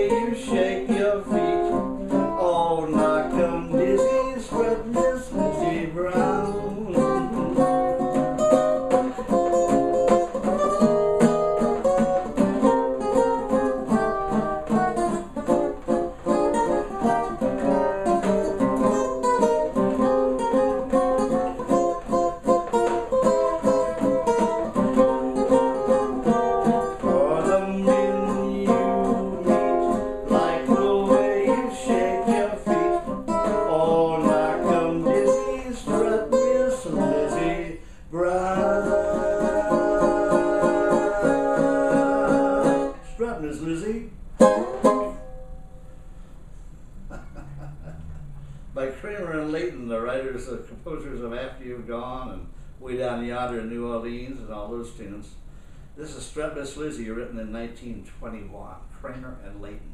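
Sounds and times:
banjo strumming fast chords: 0.0 - 37.7, 44.4 - 45.3.

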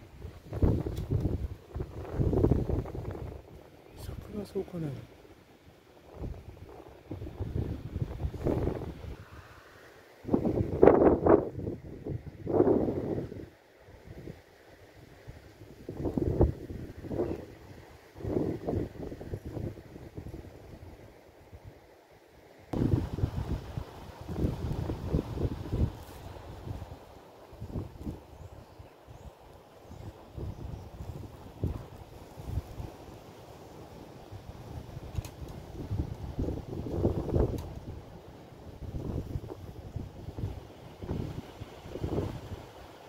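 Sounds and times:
wind buffeting microphone: 0.0 - 4.4, 6.0 - 9.3, 10.2 - 13.5, 15.1 - 21.0, 22.7 - 29.2, 29.9 - 33.2, 34.3 - 42.8.

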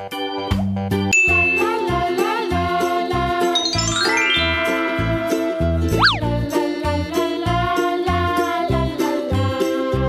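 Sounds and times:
cheerful children's music: 0.1 - 10.0
bright chiming notes: 3.5 - 6.3
bass line: 3.8 - 6.5.

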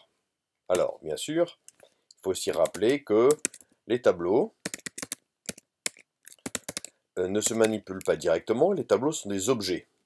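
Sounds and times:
computer keyboard typing: 2.5 - 3.6, 4.6 - 8.2.

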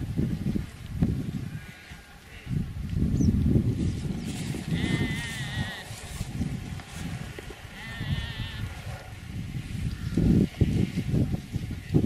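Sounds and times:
farm animal bleating: 4.6 - 6.2, 7.7 - 8.8.

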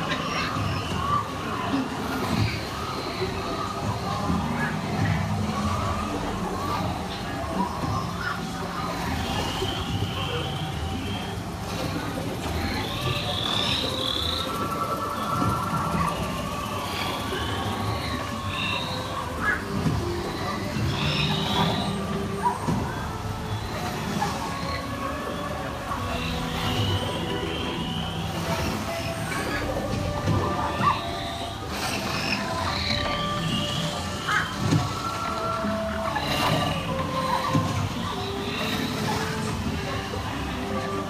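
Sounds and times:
chirping creature calls: 12.5 - 39.5.

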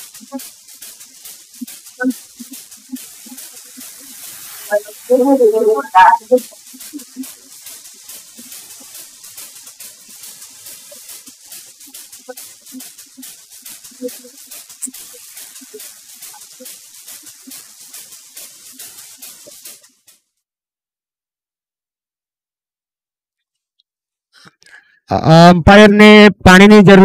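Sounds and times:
crackling microphone hiss: 0.0 - 20.2
faint indistinct sounds: 0.0 - 20.2.

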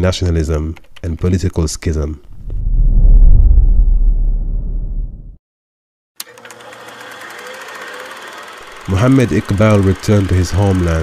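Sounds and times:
low rumble: 2.2 - 5.4
machine running with rapid ticking: 6.2 - 11.0.

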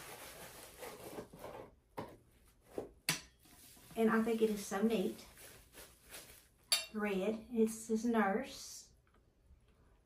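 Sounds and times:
packaging rustling: 3.6 - 6.6.

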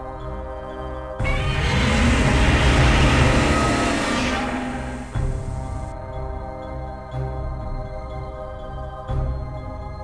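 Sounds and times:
rushing noise with deep rumble: 1.2 - 5.9.

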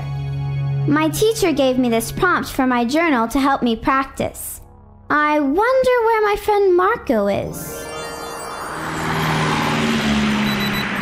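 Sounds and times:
cartoon propeller airplane droning: 7.6 - 11.0
high short beeps: 10.4 - 11.0.

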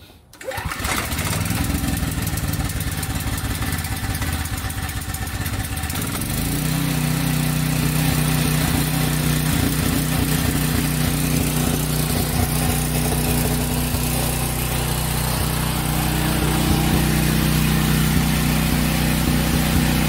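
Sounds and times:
generator running: 0.3 - 20.0.

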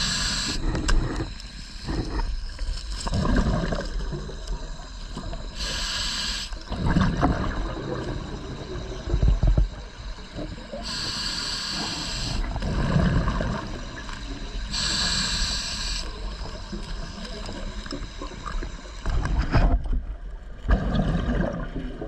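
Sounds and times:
regulator hissing inhalation: 0.0 - 2.4, 5.0 - 6.7, 10.2 - 12.6, 13.8 - 16.8
exhaled bubbles rushing: 3.0 - 4.7, 6.7 - 9.8, 12.4 - 14.2, 20.5 - 22.0.

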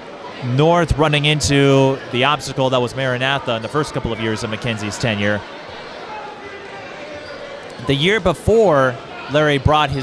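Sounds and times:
background murmur: 0.0 - 10.0.

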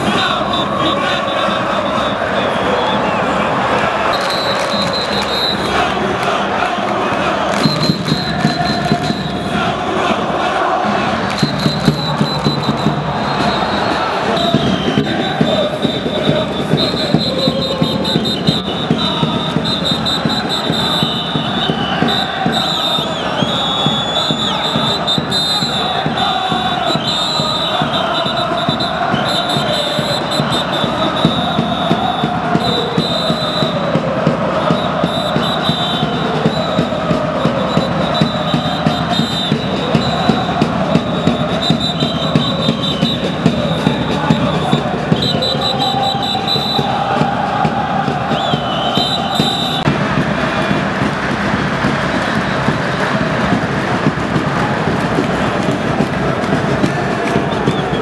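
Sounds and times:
crowd chanting: 0.0 - 58.0.

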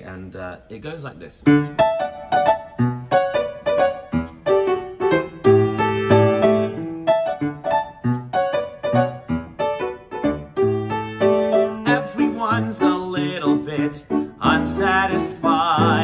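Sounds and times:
grand piano bouncy chords: 1.4 - 16.0.

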